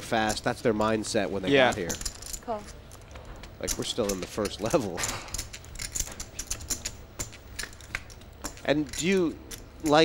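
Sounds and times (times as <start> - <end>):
poker chips clicking: 1.6 - 10.0.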